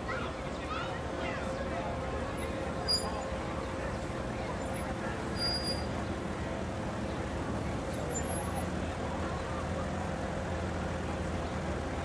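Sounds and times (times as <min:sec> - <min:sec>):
car engine low rumble: 0:00.0 - 0:12.0.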